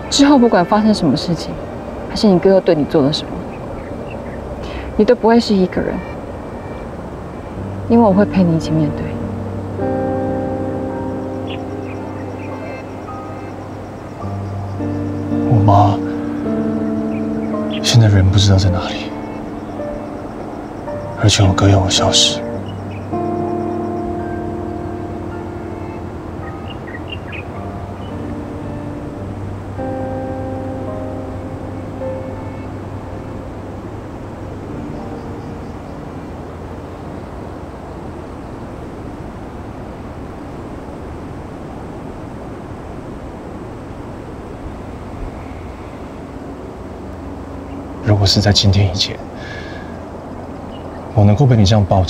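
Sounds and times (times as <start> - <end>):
soft music of slow held notes: 0.0 - 52.0
steady hiss: 0.0 - 52.0.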